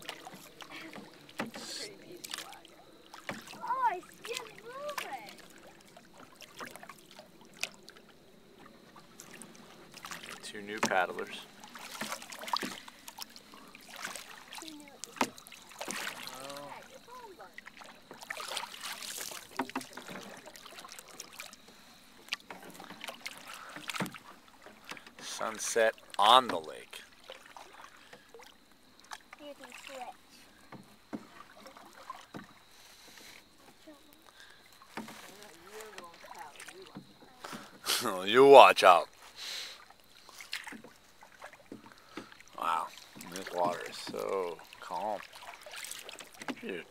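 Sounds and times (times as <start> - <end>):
paddles knocking on hull: 0.0 - 7.8, 8.6 - 39.2, 40.3 - 46.9
paddles splashing in water: 0.0 - 46.9.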